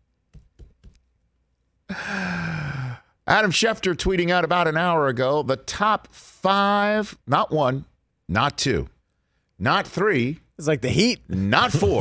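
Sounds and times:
man sighing: 1.9 - 3.2.

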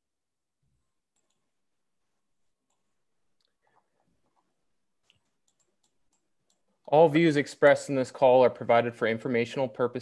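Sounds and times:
faint clicks: 2.6 - 6.7.

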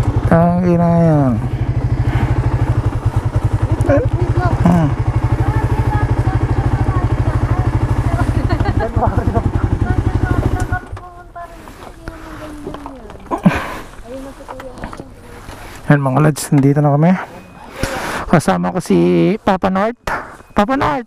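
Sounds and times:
motorcycle engine idling: 0.0 - 17.7.

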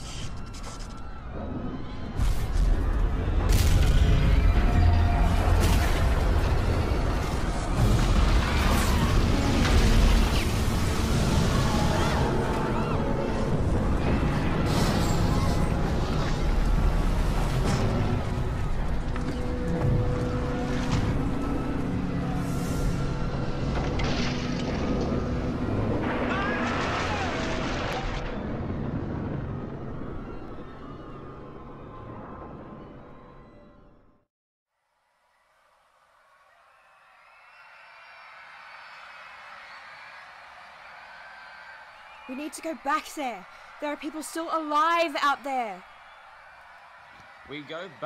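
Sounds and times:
dramatic film music: 4.3 - 27.6.

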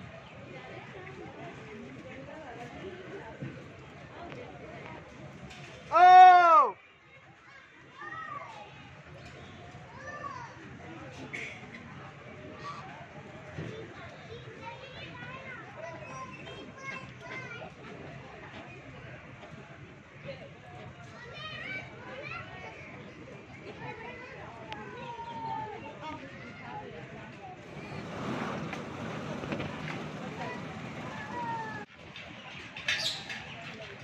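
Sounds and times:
distant crowd chatter: 0.0 - 34.0
faint distant voices: 0.0 - 34.0
children calling out: 27.6 - 31.9.

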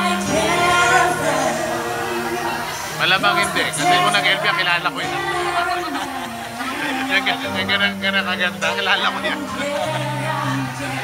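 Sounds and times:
musical accompaniment: 0.0 - 11.0
women singing into microphones: 0.0 - 11.0.

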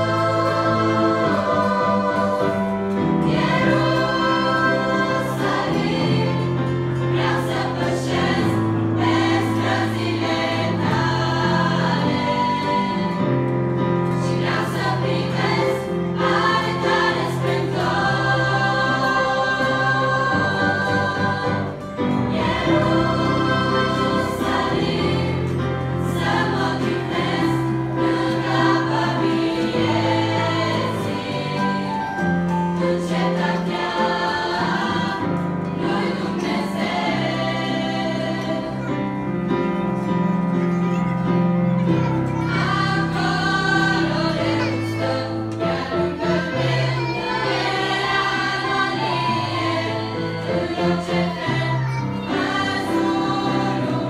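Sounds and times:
girls' choir singing a hymn: 0.0 - 54.0.

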